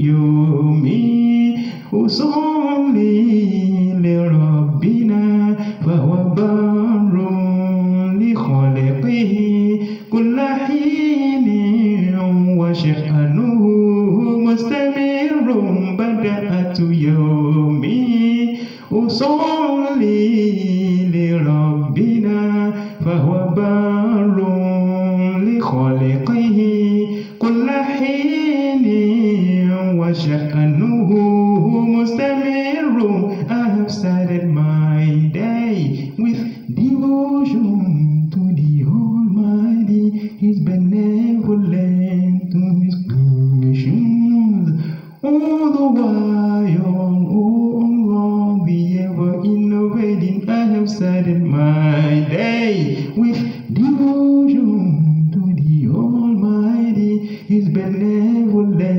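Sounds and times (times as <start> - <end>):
person chanting: 0.0 - 58.9
person breathing: 1.6 - 1.9, 5.6 - 5.8, 9.8 - 10.1, 18.5 - 18.9, 27.1 - 27.4, 44.7 - 45.2, 57.2 - 57.5.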